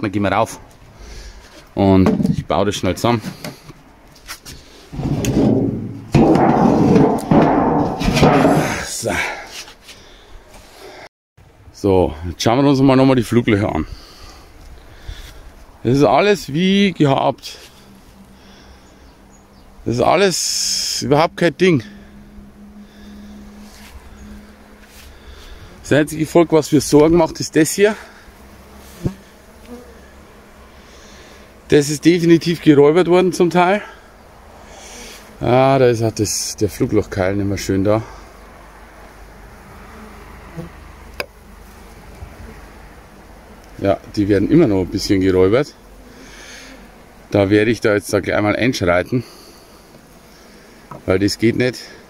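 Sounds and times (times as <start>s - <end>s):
metal roof scraping and sliding: 4.2s - 9.7s
knocks on wood: 5.0s - 8.8s
bees buzzing: 14.0s - 52.0s.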